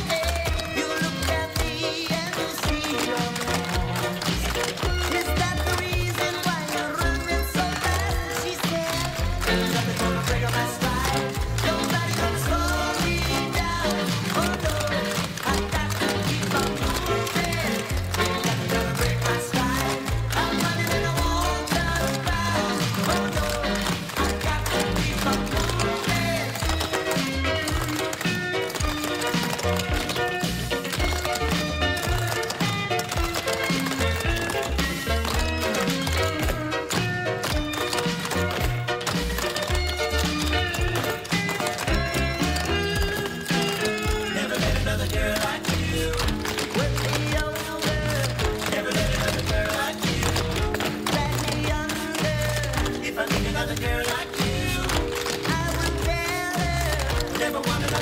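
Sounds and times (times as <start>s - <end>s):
dance music: 0.0s - 58.0s.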